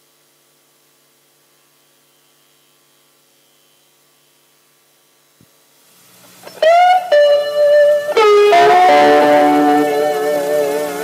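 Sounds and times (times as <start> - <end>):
faint steady hum: 0.0 - 11.0
held guitar note: 6.4 - 11.0.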